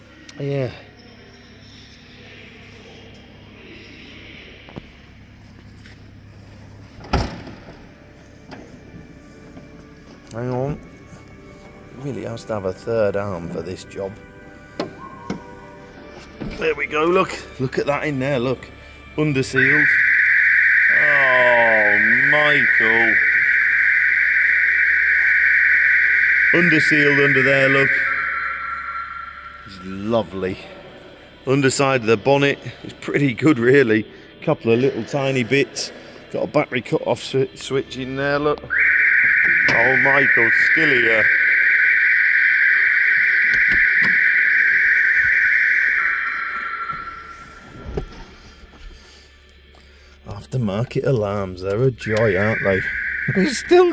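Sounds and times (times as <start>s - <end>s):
car alarm high-pitched tone: 3.6s - 32.8s, 37.9s - 53.9s.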